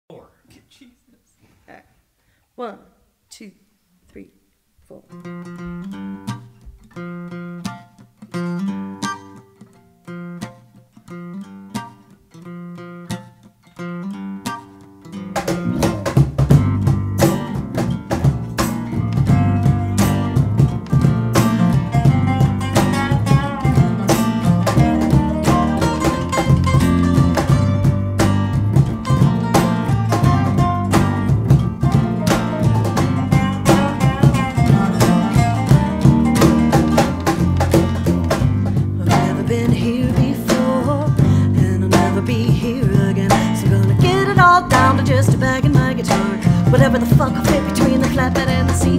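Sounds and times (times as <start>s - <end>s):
acoustic band playing groove: 5.1s - 48.9s
guitar picking single notes: 5.1s - 48.9s
low bass line: 15.5s - 29.5s.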